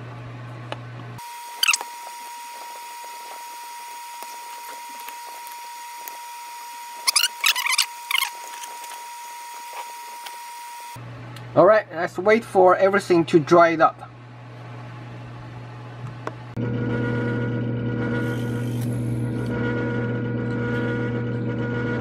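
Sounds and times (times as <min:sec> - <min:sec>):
short high-pitched squeaks: 0:01.5 - 0:02.0, 0:07.0 - 0:10.3.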